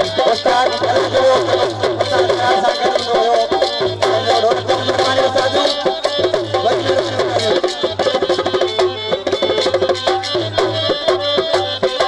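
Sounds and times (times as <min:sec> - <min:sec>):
harmonium melody: 0:00.0 - 0:12.0
steady drum beat: 0:00.0 - 0:12.0.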